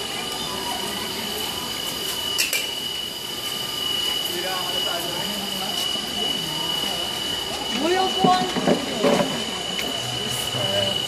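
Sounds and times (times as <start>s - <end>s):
high-pitched whine: 0.0s - 11.0s
noisy background: 0.0s - 11.0s.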